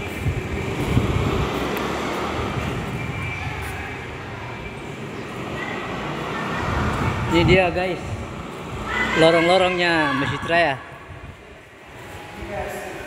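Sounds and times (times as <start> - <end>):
rumbling road traffic: 0.0 - 13.0.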